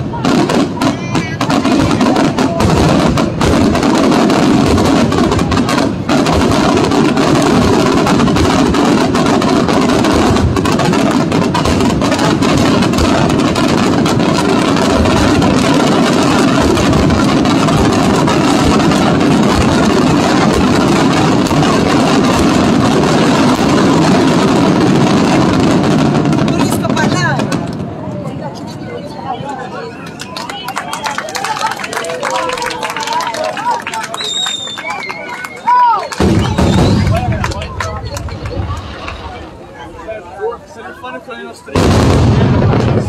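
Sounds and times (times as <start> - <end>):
fireworks bangs and crackles: 0.0 - 43.0.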